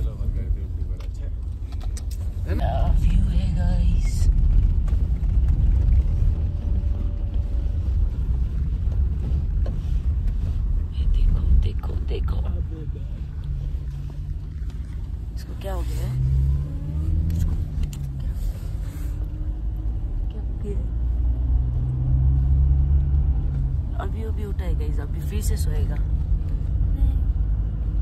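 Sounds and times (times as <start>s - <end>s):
car engine and road rumble: 0.0s - 28.0s.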